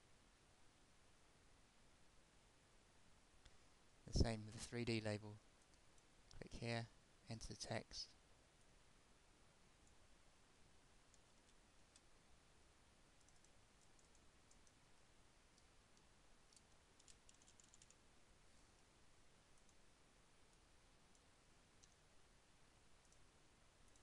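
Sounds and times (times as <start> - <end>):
mouse clicks: 15.6 - 18.0
computer keyboard keystrokes: 16.5 - 18.0.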